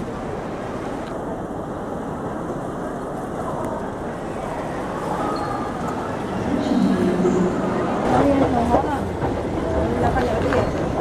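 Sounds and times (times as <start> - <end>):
escalator machinery rumbling: 0.0 - 11.0
people talking: 2.6 - 11.0.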